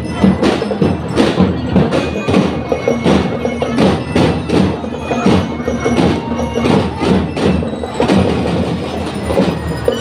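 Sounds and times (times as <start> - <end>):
marching drum and lyre band: 0.0 - 10.0
snare drums beating fast: 0.1 - 10.0.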